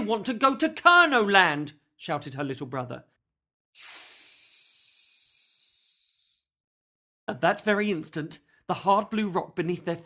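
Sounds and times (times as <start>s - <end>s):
high airy hiss: 3.8s - 6.0s.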